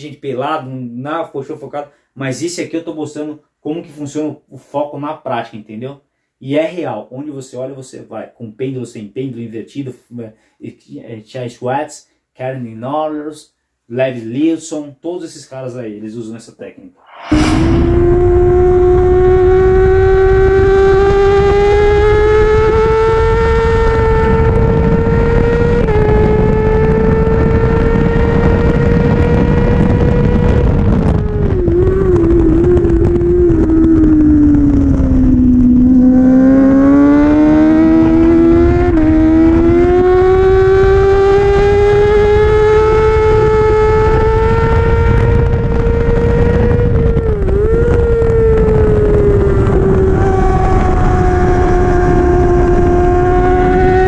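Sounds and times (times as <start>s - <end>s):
wind rushing past microphone: 17.1s - 40.8s, 41.5s - 54.0s
motorcycle engine revving: 17.3s - 30.6s, 31.2s - 54.0s.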